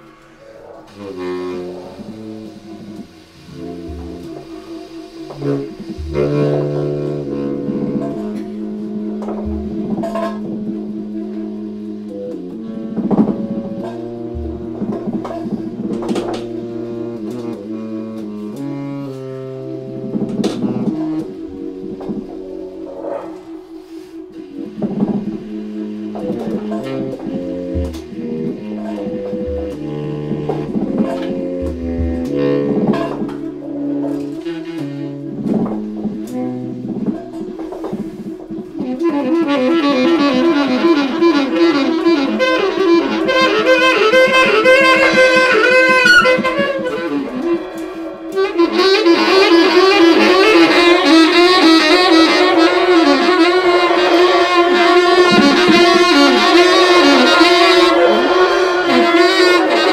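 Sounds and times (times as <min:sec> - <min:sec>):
drum kit played with sticks: 0:00.0 - 0:59.9
saxophones holding low tones: 0:00.0 - 0:59.9
drum kit hits: 0:03.0 - 0:10.7, 0:13.0 - 0:17.3, 0:26.6 - 0:33.6
bass drum thumps: 0:03.5 - 0:04.6, 0:05.4 - 0:10.8, 0:13.0 - 0:17.5, 0:26.3 - 0:33.5.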